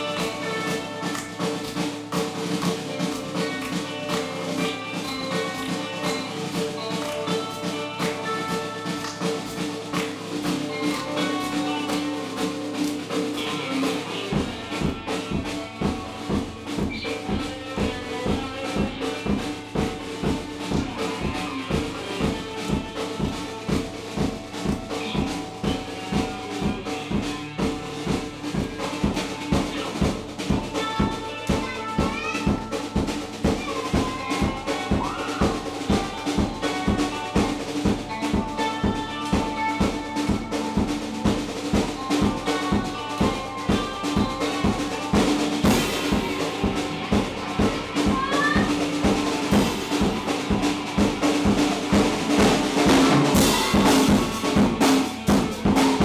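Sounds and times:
bass drum beat: 0.0s - 56.0s
drum kit playing: 0.0s - 56.0s
electric guitar: 0.0s - 56.0s.

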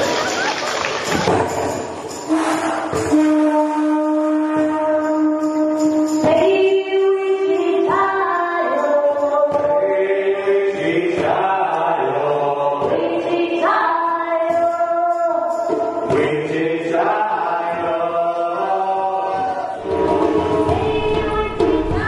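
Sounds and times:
group vocal chanting: 9.5s - 14.8s, 16.0s - 22.0s.

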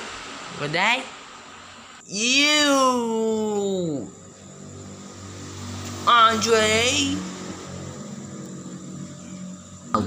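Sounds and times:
low steady hum: 0.0s - 10.0s.

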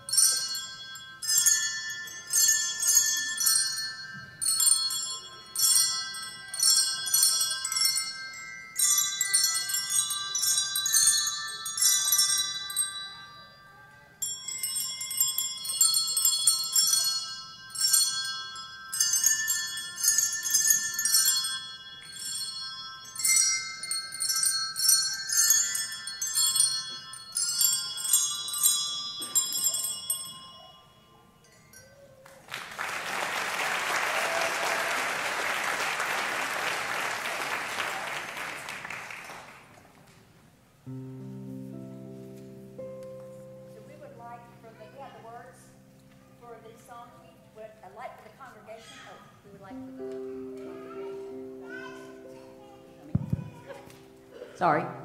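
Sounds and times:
hand bells playing a tune: 0.0s - 39.5s, 40.8s - 55.0s
audience applauding: 32.2s - 40.0s.

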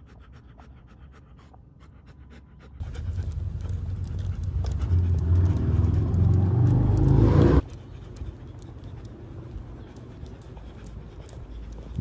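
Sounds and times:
dog panting: 0.0s - 12.0s
low vehicle engine rumble: 2.8s - 12.0s.

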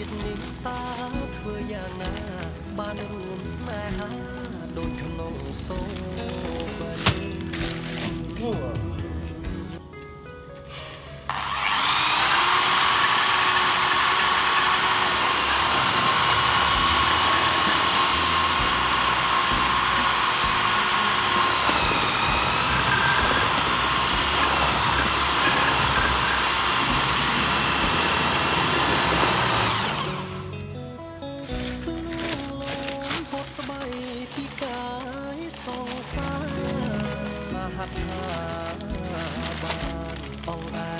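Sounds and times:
electric drill motor whine: 11.2s - 30.6s.

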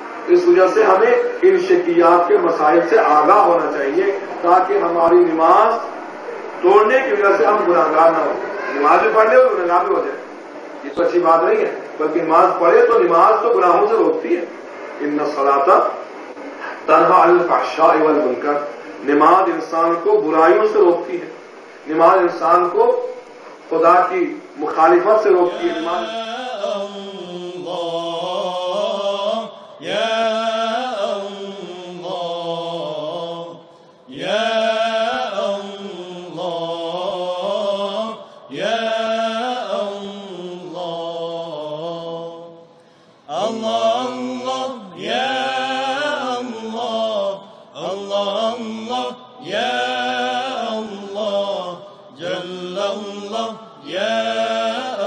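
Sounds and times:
solo voice chanting: 24.1s - 55.0s.

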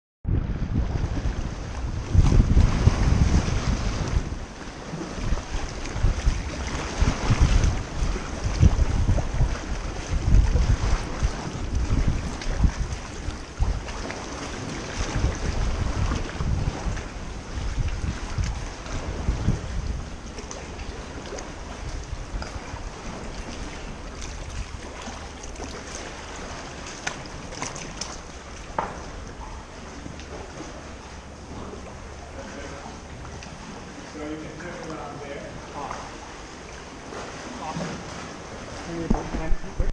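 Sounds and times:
wind buffeting microphone: 0.2s - 39.9s
water splashing and lapping: 0.4s - 39.9s.

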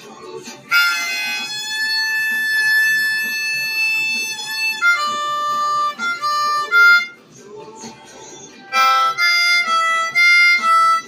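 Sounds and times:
harmonica holding long note: 0.7s - 7.2s, 8.7s - 11.0s.

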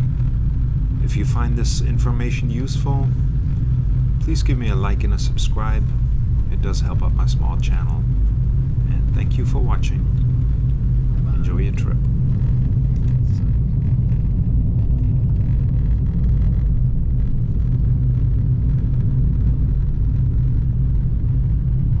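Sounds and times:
car engine and tyres rumbling: 0.0s - 22.0s.

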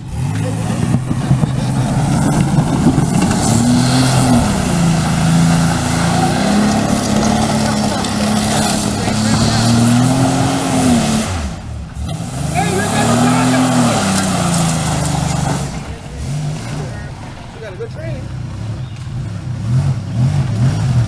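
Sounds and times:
minivan engine revving: 0.0s - 21.0s.

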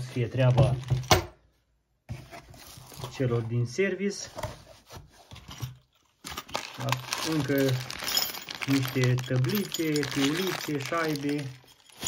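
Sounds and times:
packaging crinkling and rustling: 2.4s - 3.3s, 6.2s - 12.0s
man speaking: 3.1s - 4.4s, 6.8s - 7.9s, 8.6s - 11.6s.

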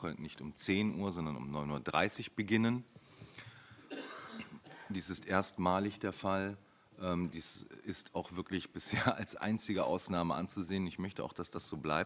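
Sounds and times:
person coughing: 3.9s - 5.0s.

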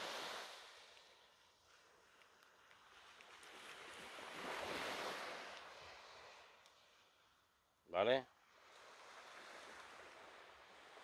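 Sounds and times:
sea waves washing on shore: 0.0s - 1.2s.

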